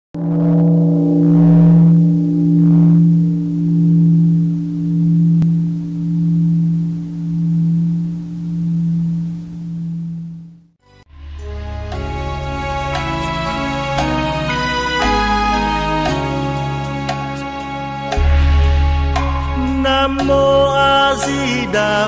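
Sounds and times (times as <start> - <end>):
deep temple bell ringing: 0.2 - 10.3.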